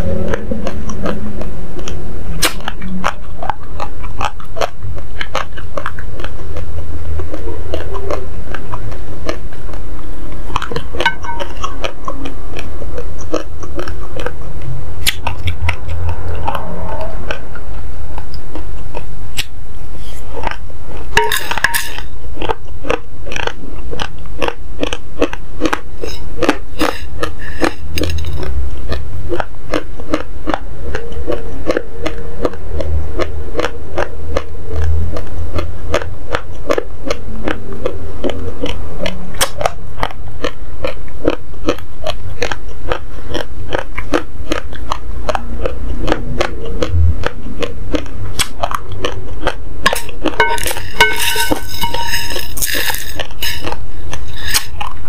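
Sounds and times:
raw rice crunched and chewed: 0:00.0 - 0:55.0
wooden spoon scraping ceramic plate: 0:21.2 - 0:22.1, 0:49.9 - 0:54.7.

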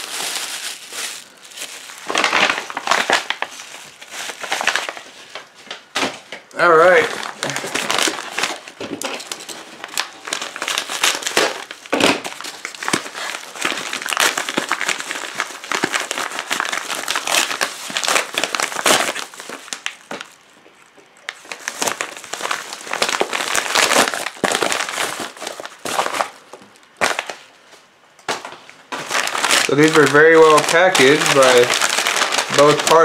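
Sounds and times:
padded paper mailer tearing: 0:29.1 - 0:33.0.

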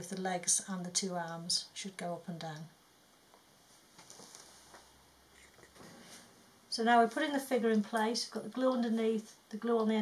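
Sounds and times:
faint clicks and rustles: 0:03.3 - 0:06.4.

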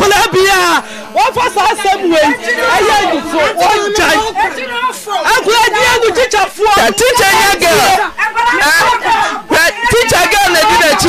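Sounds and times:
crowd talking loudly over one another: 0:00.0 - 0:11.0.

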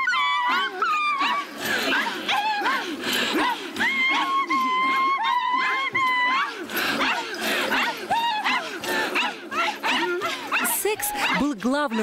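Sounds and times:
high-pitched vocal cries: 0:00.0 - 0:12.0.

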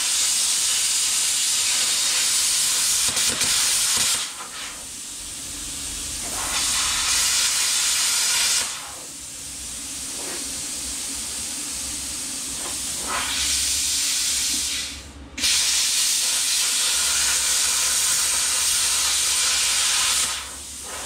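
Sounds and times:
plasma cutter hissing: 0:00.0 - 0:21.0.

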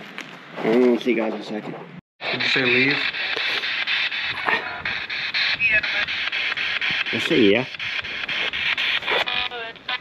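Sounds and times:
chopped radio static bursts: 0:02.2 - 0:10.0.

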